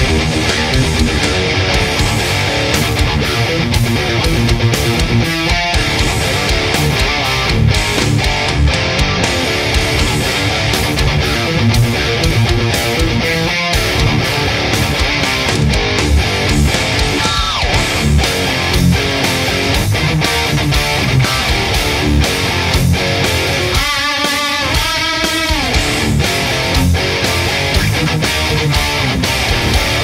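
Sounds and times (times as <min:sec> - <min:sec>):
heavy metal electric guitar riffing: 0:00.0 - 0:30.0.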